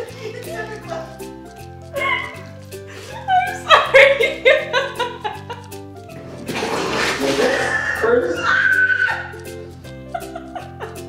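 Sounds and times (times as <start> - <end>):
background music with low notes: 0.0 - 11.0
women squealing and laughing: 1.9 - 5.5, 7.5 - 9.5.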